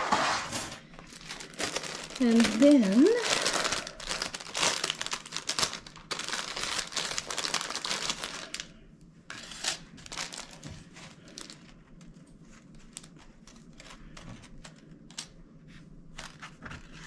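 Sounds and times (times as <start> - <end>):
plastic packaging crinkling: 0.8 - 15.3.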